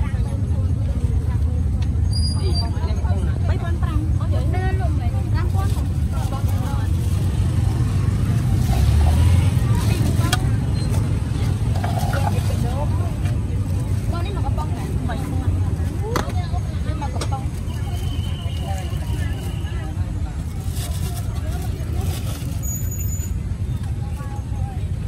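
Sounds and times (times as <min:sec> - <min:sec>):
people talking: 0:00.0 - 0:22.7, 0:23.6 - 0:25.0.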